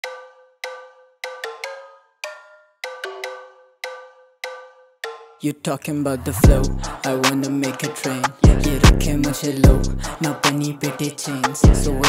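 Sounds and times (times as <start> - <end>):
bell-like hip hop melody: 6.4 - 12.0.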